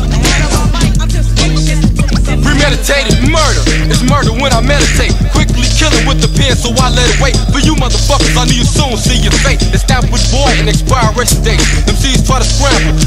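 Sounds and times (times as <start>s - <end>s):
rapping over a beat: 0.0s - 13.0s.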